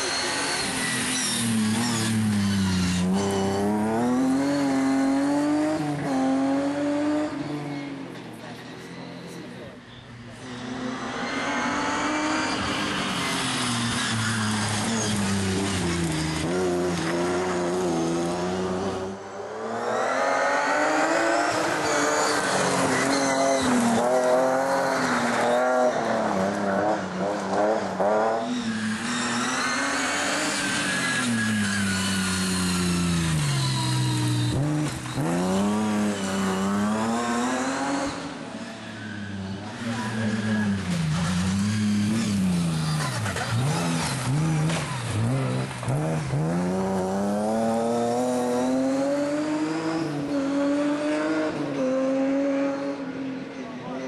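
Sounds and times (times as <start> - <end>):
rally car engine revving: 0.0 - 53.2.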